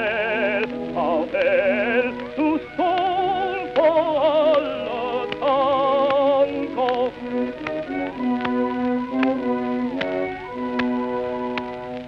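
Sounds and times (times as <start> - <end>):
male opera singer: 0.0 - 7.4
instrumental accompaniment chords: 0.0 - 12.0
record surface clicks: 0.0 - 12.0.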